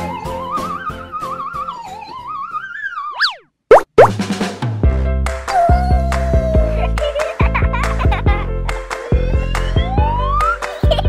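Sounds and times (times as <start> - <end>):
cartoon whistle glide: 2.3 - 3.9
rising bloop sounds: 3.1 - 4.1.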